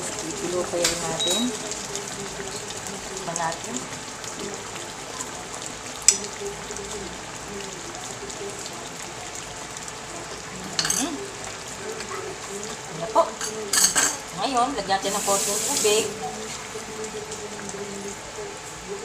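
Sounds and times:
fish simmering in a frying pan: 0:00.0 - 0:19.0.

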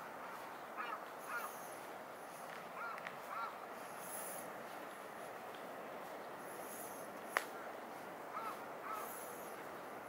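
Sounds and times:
outdoor background hiss: 0:00.0 - 0:10.0
bird calls: 0:00.4 - 0:01.9, 0:02.8 - 0:04.4, 0:08.3 - 0:09.6.

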